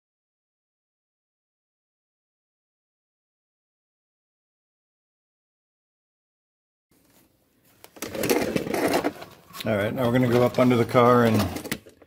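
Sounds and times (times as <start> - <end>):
metal parts clattering on concrete: 8.0 - 9.4.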